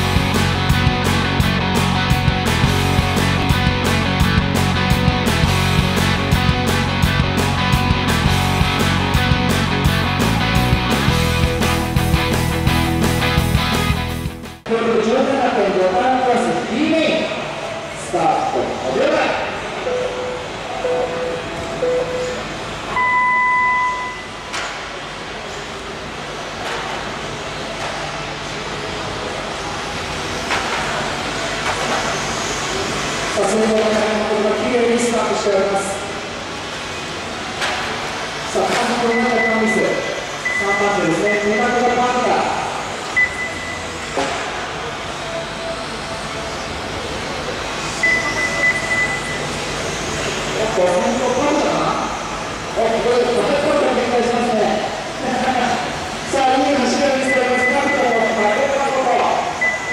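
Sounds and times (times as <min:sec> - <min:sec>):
indoor hall noise: 0:00.0 - 0:59.9
start signal beeps: 0:19.8 - 0:24.5, 0:39.0 - 0:42.2, 0:43.2 - 0:44.0, 0:48.0 - 0:49.5, 0:57.1 - 0:58.6, 0:59.6 - 0:59.9.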